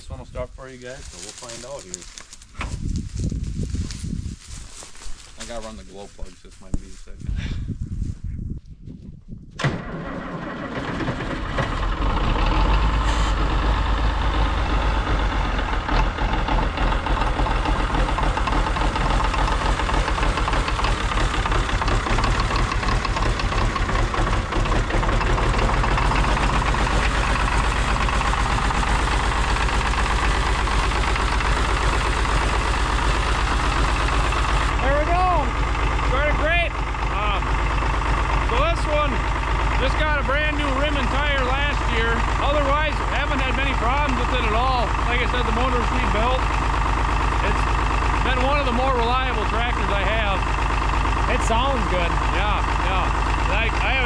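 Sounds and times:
diesel engine starting and idling: 0:09.6 - 0:54.0.

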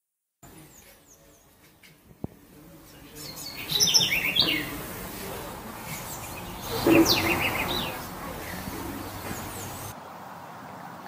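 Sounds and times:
birds chirping: 0:00.4 - 0:10.0
outdoor background noise: 0:00.4 - 0:11.0.

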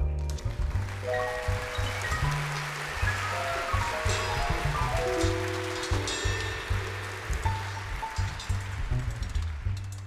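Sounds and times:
double bass: 0:00.0 - 0:10.0
drums: 0:00.0 - 0:10.0
grand piano notes: 0:00.8 - 0:09.2
cymbals shimmering: 0:01.1 - 0:09.3.

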